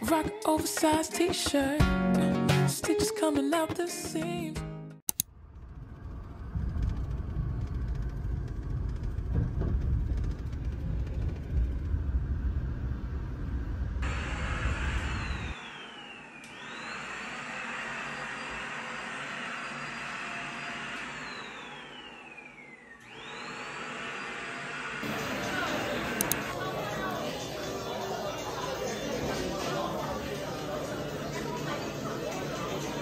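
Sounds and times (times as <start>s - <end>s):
wind buffeting microphone: 5.6s - 14.0s
stick vacuum whining: 14.0s - 26.5s.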